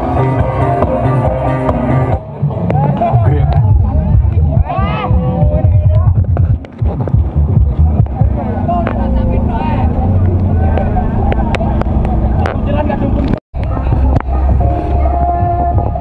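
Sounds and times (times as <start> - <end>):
loud music with heavy bass: 0.0 - 16.0
voices shouting: 2.8 - 6.1.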